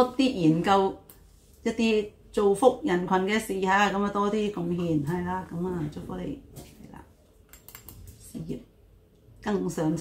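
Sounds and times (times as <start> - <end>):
woman speaking: 0.0 - 7.2, 8.2 - 8.8, 9.4 - 10.0.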